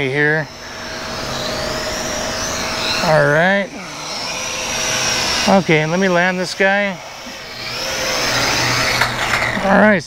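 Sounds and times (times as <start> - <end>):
toy drone motors whining: 0.0 - 10.0.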